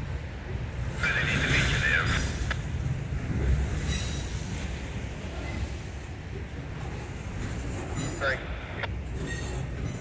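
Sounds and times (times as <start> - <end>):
freight train rumbling past: 0.0 - 10.0
wheel squealing on rail: 3.5 - 4.7, 7.4 - 8.4, 9.0 - 10.0.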